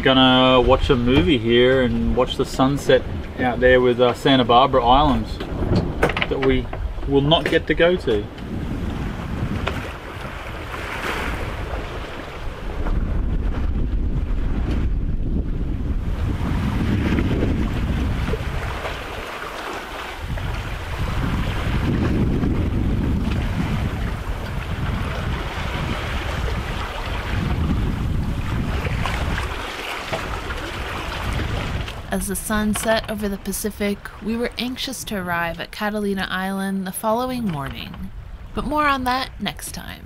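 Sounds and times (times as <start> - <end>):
wind buffeting microphone: 0.0 - 36.5, 37.1 - 40.0
water rushing along hull: 0.0 - 40.0.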